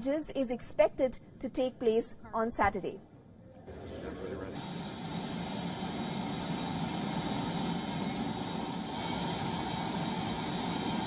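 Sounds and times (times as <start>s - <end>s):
jet turbines running: 3.7s - 11.0s.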